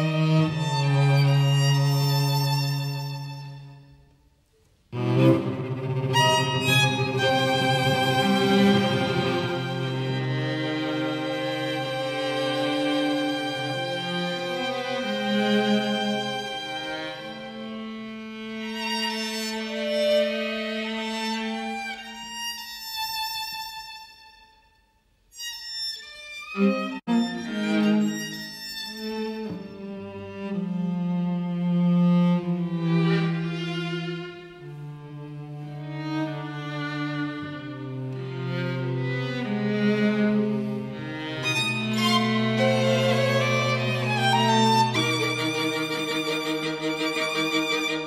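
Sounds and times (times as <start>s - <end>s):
string quartet playing: 0.0s - 24.4s, 25.4s - 48.0s
high held violin notes: 35.9s - 48.0s.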